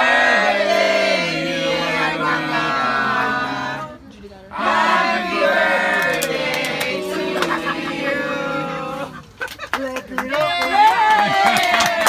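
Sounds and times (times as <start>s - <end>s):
group of people shouting and cheering: 4.6s - 9.3s, 10.3s - 12.0s.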